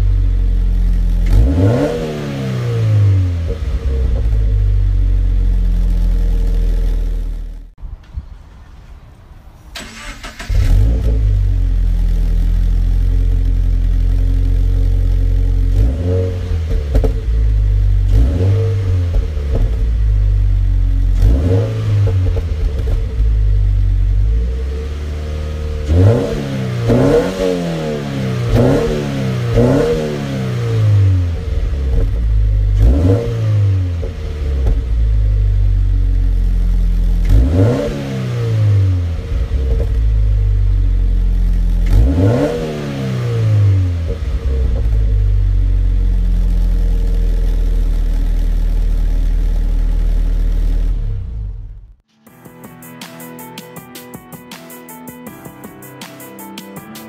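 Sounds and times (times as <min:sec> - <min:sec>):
car engine idling and revving: 0:00.0 - 0:52.0.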